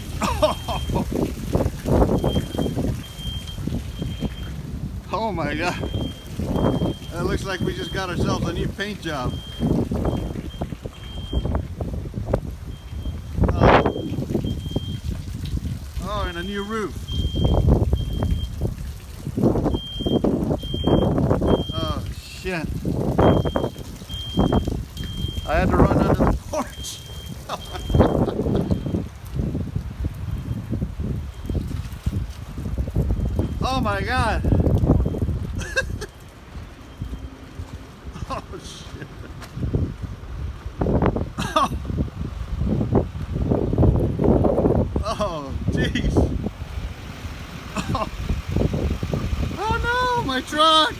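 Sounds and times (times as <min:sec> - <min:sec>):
rough rustling and rumbling noise: 0:00.0 - 0:50.9
wind buffeting phone microphone: 0:00.0 - 0:50.9
high electronic beep: 0:05.8 - 0:08.4, 0:09.2 - 0:11.6, 0:12.7 - 0:15.0, 0:17.1 - 0:18.6, 0:19.7 - 0:22.0, 0:23.2 - 0:25.9, 0:26.7 - 0:29.1.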